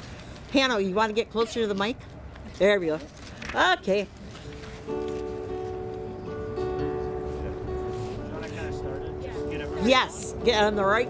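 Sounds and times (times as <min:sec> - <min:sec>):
band instrument holding notes: 0:04.6 - 0:11.0.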